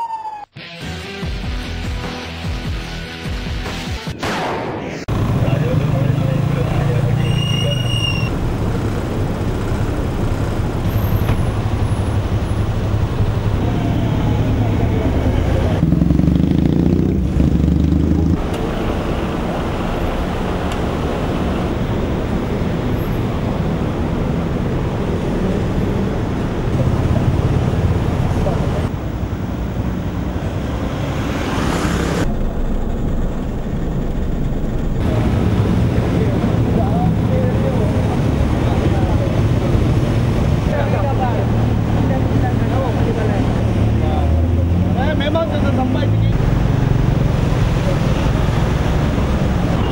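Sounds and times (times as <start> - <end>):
road traffic rumble: 5.1 - 49.9.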